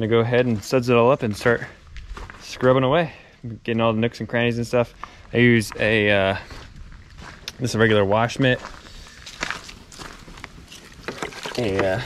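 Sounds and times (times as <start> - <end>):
footsteps on wet pavement: 0.2 - 3.8, 4.8 - 12.0.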